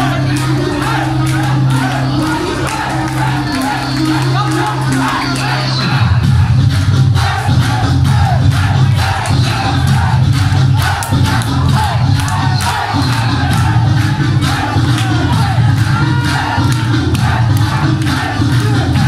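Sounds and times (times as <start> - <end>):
audience shouting and cheering: 0.0 - 19.0
loud dance music: 0.0 - 19.0.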